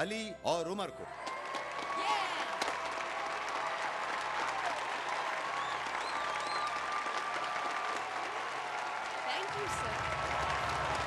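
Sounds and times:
audience applauding: 1.1s - 11.0s.

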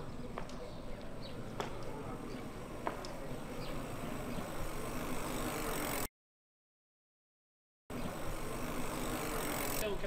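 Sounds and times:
steady street background noise: 0.0s - 6.1s, 7.9s - 10.0s.

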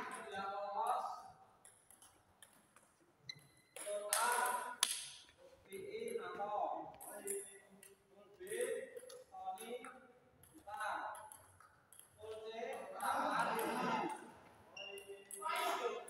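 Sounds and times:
voices talking in a hall: 0.0s - 1.6s, 3.0s - 11.3s, 12.2s - 16.0s
table tennis ball clicks: 10.5s - 13.8s.

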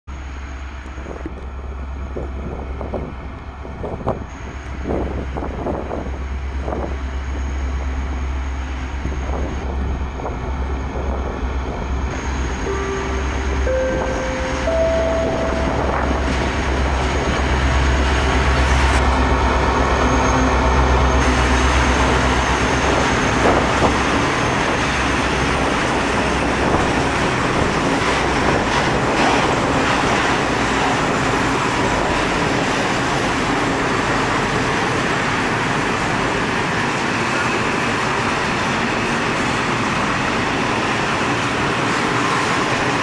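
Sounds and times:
diesel locomotive engine rumble: 0.1s - 43.0s
three-note rising chime: 12.4s - 17.6s.

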